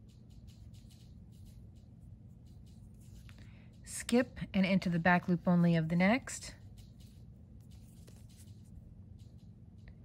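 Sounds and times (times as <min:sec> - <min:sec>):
crochet hook scratching thread: 0:00.0 - 0:03.4, 0:06.2 - 0:09.4.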